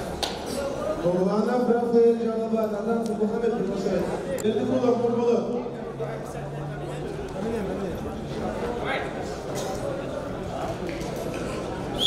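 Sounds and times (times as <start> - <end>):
echoing voices and chatter: 0.0 - 12.0.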